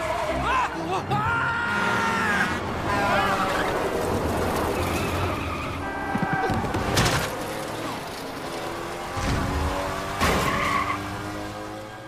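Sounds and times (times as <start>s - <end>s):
vehicles rushing past: 0.0s - 12.0s
car tires skidding: 2.9s - 8.2s, 10.1s - 12.0s.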